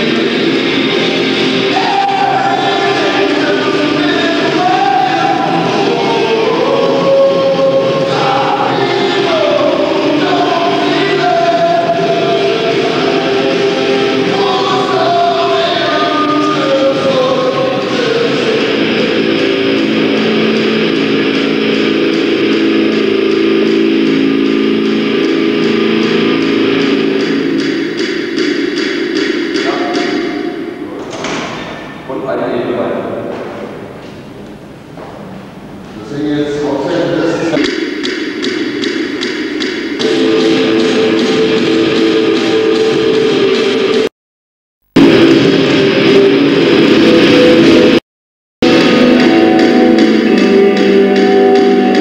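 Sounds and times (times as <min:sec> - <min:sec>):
choir-like singing: 0:00.0 - 0:30.6, 0:37.5 - 0:44.1.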